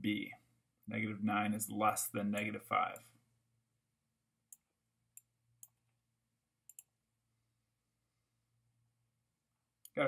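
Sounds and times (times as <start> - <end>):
computer mouse clicks: 4.5 - 6.0, 6.6 - 7.0.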